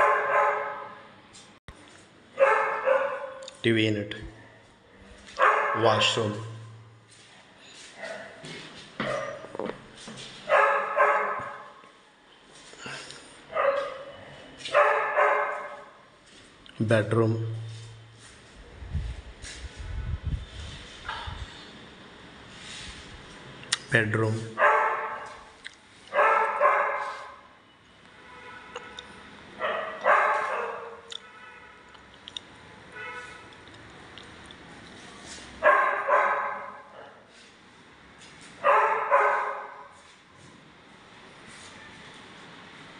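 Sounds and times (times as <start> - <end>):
dog barking: 0.0 - 1.0, 2.4 - 3.4, 5.4 - 6.2, 8.0 - 8.4, 10.5 - 11.8, 13.5 - 16.0, 24.6 - 25.5, 26.1 - 27.5, 29.6 - 31.1, 35.6 - 37.2, 38.6 - 40.0.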